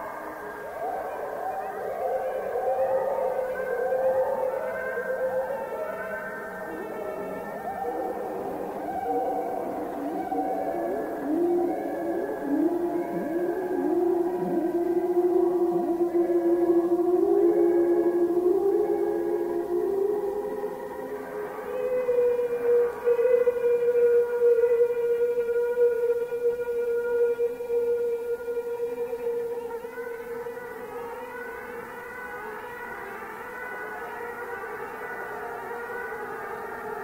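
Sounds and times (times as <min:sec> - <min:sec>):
siren-like drone tones: 0:00.0 - 0:37.0.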